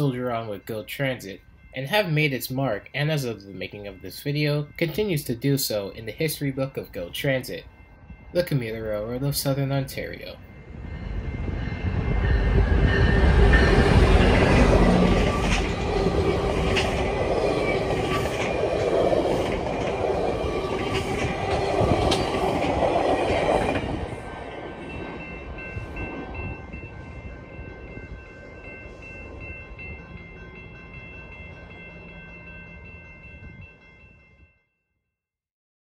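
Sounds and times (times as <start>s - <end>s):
diesel locomotive engine: 0.0s - 34.3s
passing train: 0.0s - 34.6s
level-crossing bells ringing: 0.0s - 34.7s.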